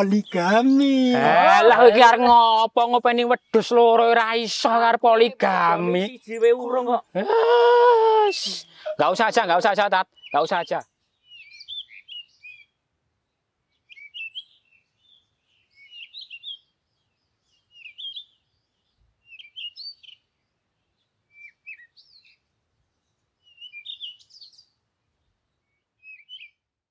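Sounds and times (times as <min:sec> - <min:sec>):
songbird twittering: 0:00.0 - 0:00.8, 0:08.3 - 0:26.6.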